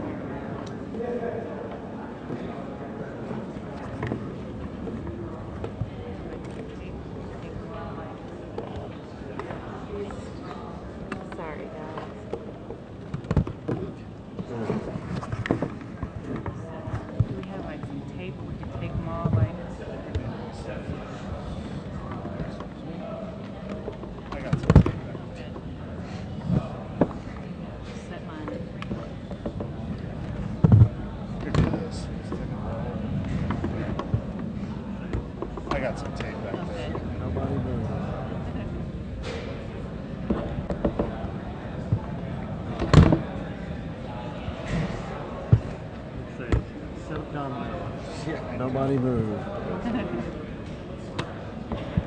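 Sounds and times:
indistinct room chatter: 0.0 - 52.0.

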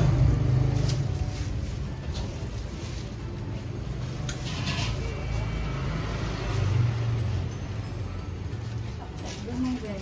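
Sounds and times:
street traffic engine hum: 0.0 - 10.0
vehicle passing close by: 4.7 - 7.8.

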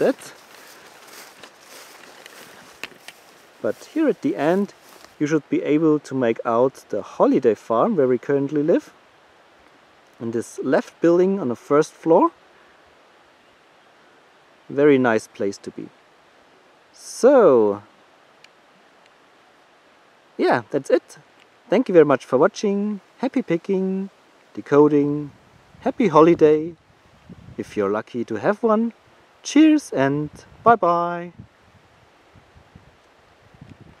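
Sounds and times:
faint steady hiss: 0.0 - 34.0
light wind: 0.0 - 34.0.

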